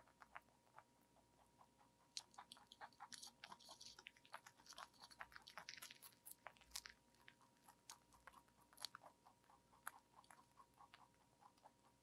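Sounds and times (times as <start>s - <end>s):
rabbit chewing leafy greens: 0.0s - 12.0s.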